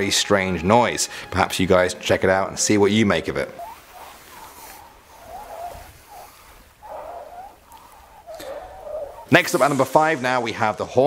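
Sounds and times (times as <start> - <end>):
sand squeaking under hands: 0.0 - 10.5.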